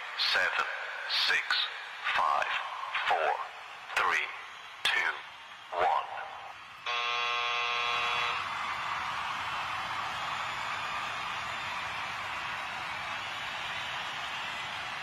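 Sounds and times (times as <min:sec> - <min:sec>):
electronic buzzer: 0:06.9 - 0:08.5.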